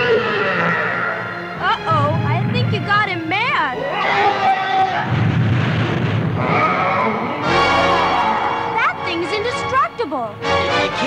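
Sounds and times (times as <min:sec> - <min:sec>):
cartoon giant foot stamping crash: 0:05.1 - 0:06.8.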